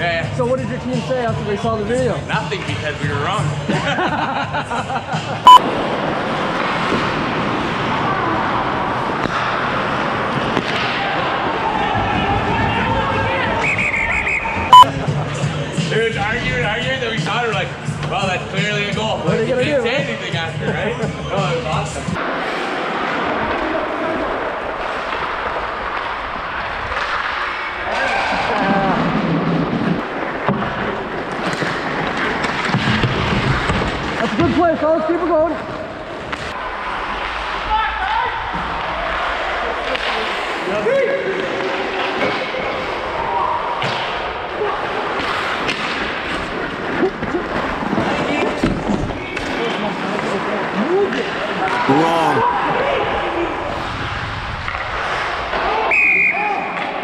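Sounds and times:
skates on ice: 5.6s - 14.4s, 22.1s - 57.0s.

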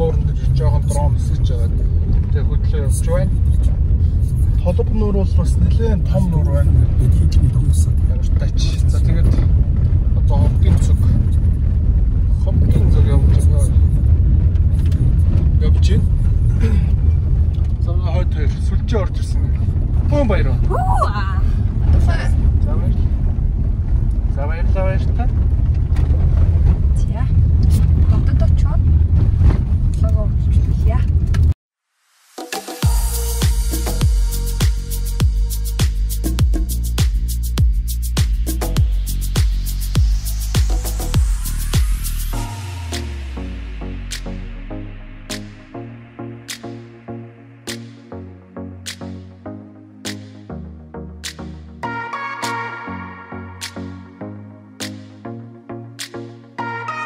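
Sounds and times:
car engine and road rumble: 0.0s - 31.6s, 32.2s - 52.3s.

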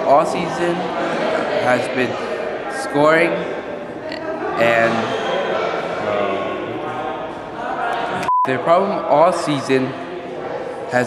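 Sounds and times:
person talking: 4.1s - 5.1s.

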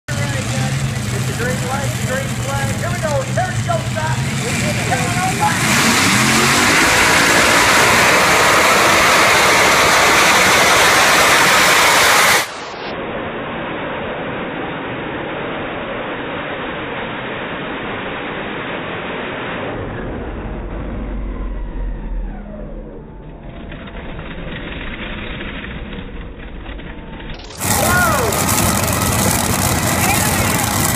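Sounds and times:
tractor engine at full throttle: 0.0s - 12.9s, 18.9s - 30.9s.

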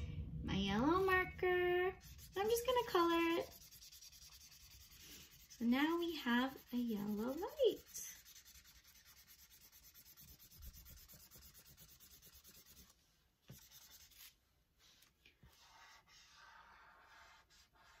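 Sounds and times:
marker scratching on paper: 2.0s - 12.9s, 13.5s - 18.0s.

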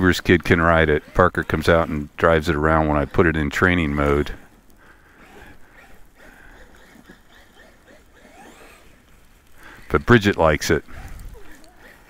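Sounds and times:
electric motor whining: 0.0s - 12.0s.

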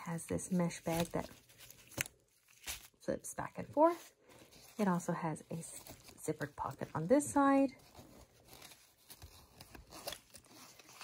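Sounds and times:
fabric pouch rustling and clicking: 0.6s - 3.0s.

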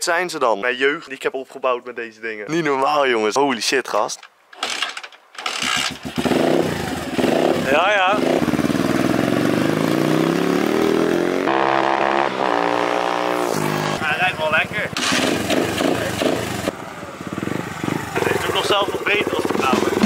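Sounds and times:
pitbike engine revving: 5.4s - 20.0s.

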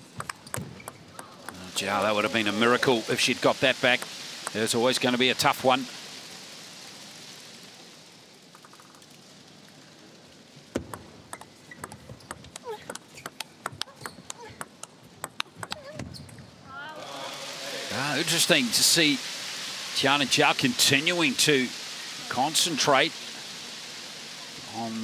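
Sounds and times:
table tennis ball clicks: 0.0s - 1.6s, 10.7s - 16.4s
crowd noise: 0.9s - 5.9s, 16.7s - 25.0s
crowd shouting and cheering: 1.2s - 3.4s, 16.7s - 19.1s.

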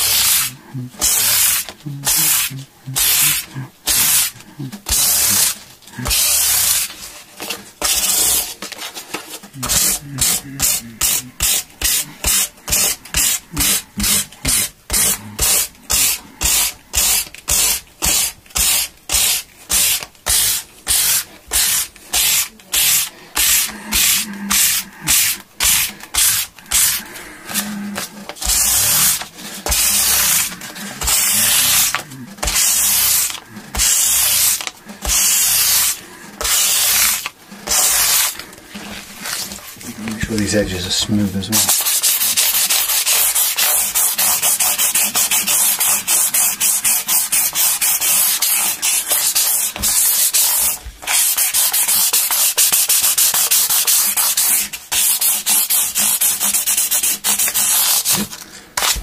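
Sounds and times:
hand sanding wood with sandpaper: 0.0s - 59.0s.

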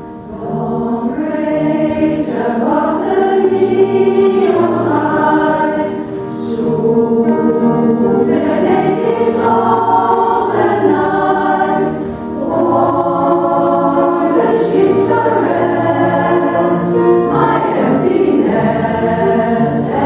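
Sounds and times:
women's choir singing: 0.1s - 20.0s.

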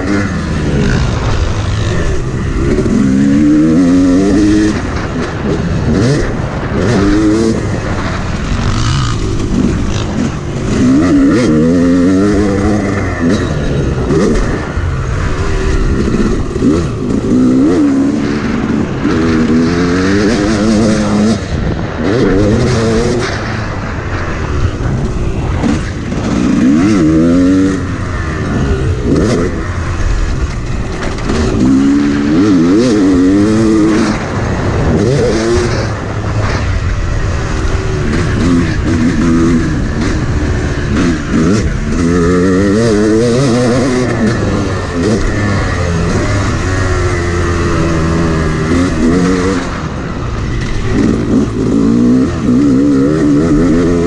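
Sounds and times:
dirt bike engine revving: 0.0s - 54.0s
rushing wind: 0.0s - 54.0s.

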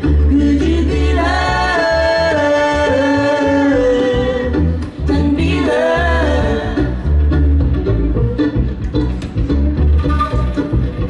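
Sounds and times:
acoustic string band: 0.0s - 11.0s
low bass line: 0.0s - 11.0s
woman singing: 0.2s - 7.1s.

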